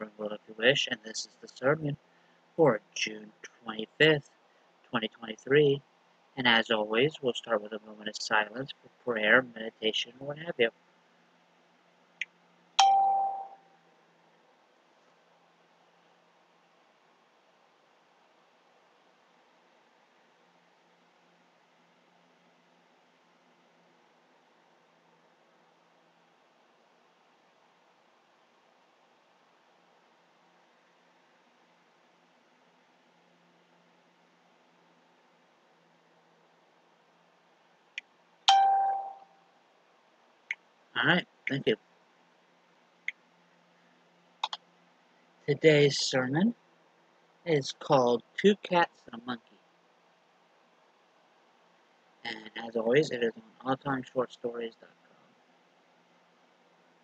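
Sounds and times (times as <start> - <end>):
bell-like ding: 12.8 - 13.6, 38.5 - 39.3.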